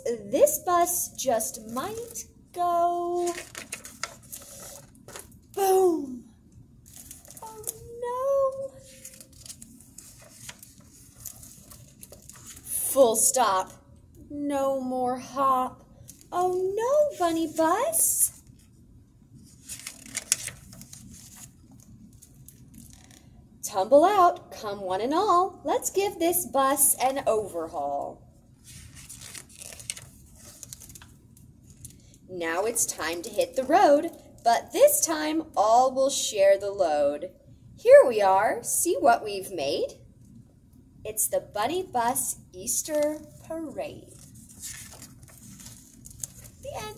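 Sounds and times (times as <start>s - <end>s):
paper pages rustling: 3.0s - 5.5s, 6.8s - 8.0s, 8.8s - 12.8s, 19.4s - 23.3s, 28.6s - 32.1s, 44.0s - 46.9s.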